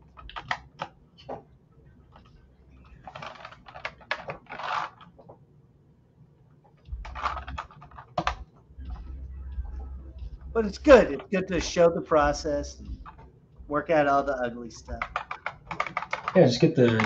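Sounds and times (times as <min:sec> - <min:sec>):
keyboard keys clicking: 0:00.0 - 0:00.9, 0:06.9 - 0:08.5, 0:14.8 - 0:17.0
low hum: 0:00.0 - 0:03.8, 0:06.9 - 0:15.6.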